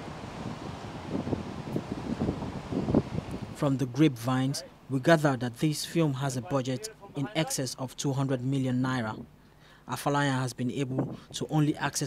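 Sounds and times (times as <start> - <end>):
wind buffeting microphone: 0.0 - 4.1.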